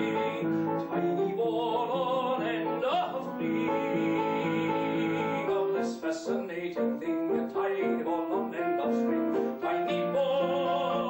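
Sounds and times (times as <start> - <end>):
grand piano notes: 0.0 - 11.0.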